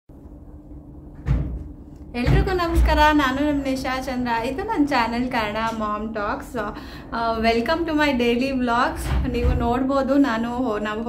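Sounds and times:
low steady hum: 0:00.1 - 0:11.0
door closing with thud: 0:01.1 - 0:03.0, 0:09.0 - 0:09.8.

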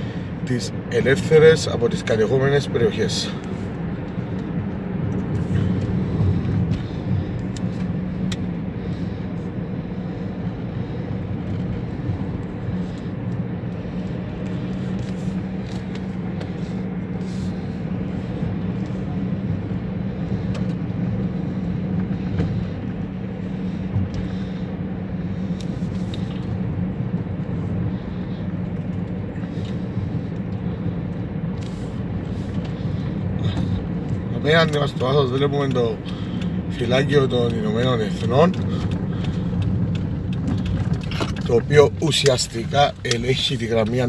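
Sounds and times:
car engine hum: 0:00.0 - 0:44.0
tyre and road noise: 0:00.0 - 0:44.0.

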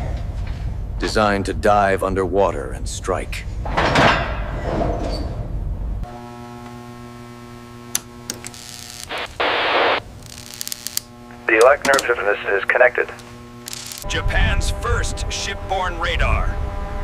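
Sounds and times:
low rumble: 0:04.5 - 0:06.0, 0:14.1 - 0:17.0
radio equipment electrical hum: 0:06.0 - 0:17.0
static hiss burst: 0:08.4 - 0:14.1
sharp clicks: 0:13.6 - 0:14.1.

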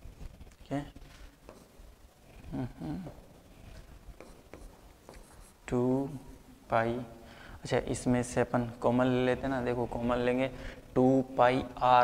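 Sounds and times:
pen tapping on whiteboard screen: 0:04.2 - 0:05.3.

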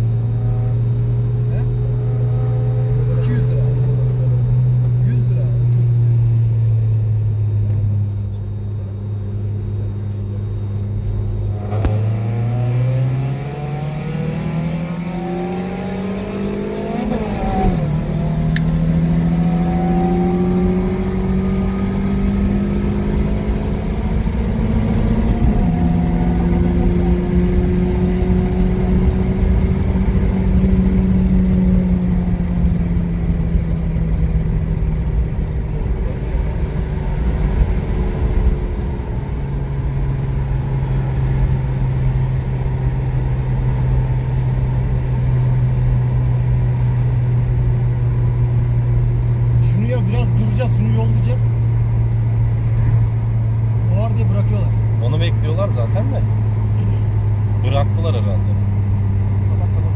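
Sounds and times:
car engine accelerating: 0:00.0 - 0:59.9
road and wind noise: 0:00.0 - 0:59.9.

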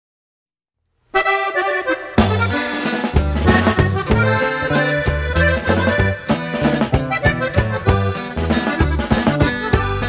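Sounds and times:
accordion run of notes: 0:01.2 - 0:10.0.

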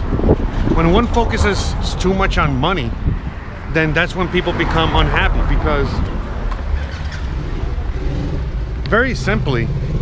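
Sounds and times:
low rumble of vehicle engines: 0:00.0 - 0:10.0.

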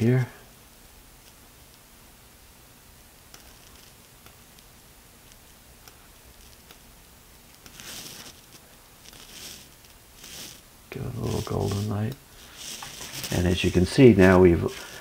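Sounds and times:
steady faint hiss: 0:00.0 - 0:15.0
hissing rustles: 0:07.5 - 0:15.0.

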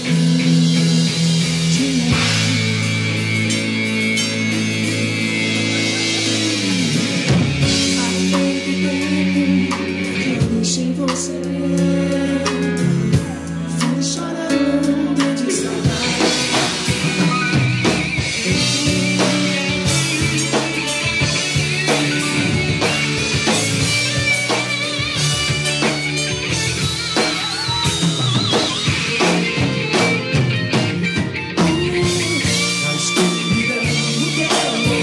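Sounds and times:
drum kit beat: 0:00.0 - 0:35.0
electric guitar lead: 0:00.0 - 0:35.0.

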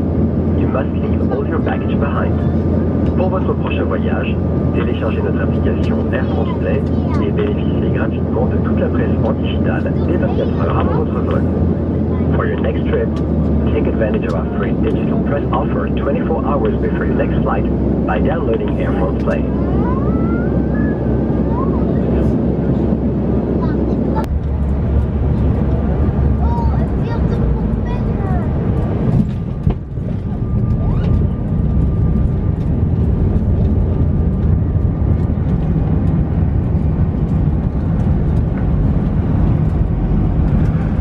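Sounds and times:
jet cabin engine drone: 0:00.0 - 0:41.0
plane rolling along runway: 0:00.0 - 0:41.0
cabin announcement over pa: 0:00.5 - 0:22.5.

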